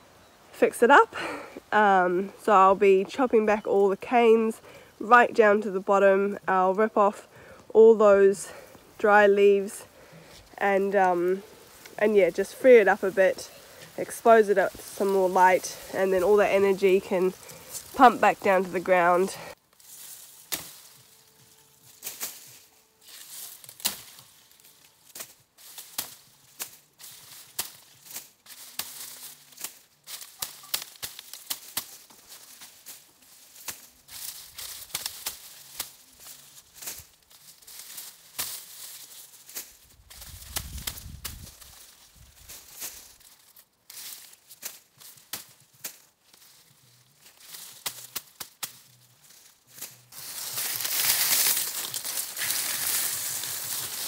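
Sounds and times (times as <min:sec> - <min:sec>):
dry leaves tearing and rustling: 0:01.2 - 0:54.0.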